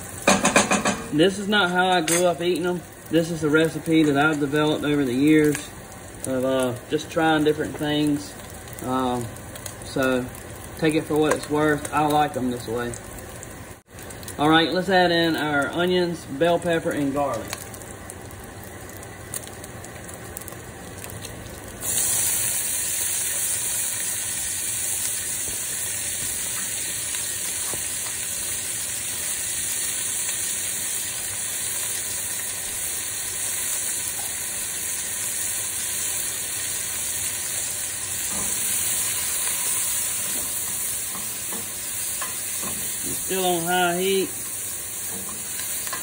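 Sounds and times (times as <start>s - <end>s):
vegetables sizzling in fat: 0.0s - 46.0s.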